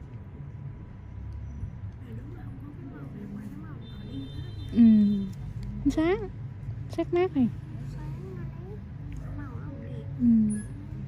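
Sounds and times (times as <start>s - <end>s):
faint voices talking: 1.8s - 11.0s.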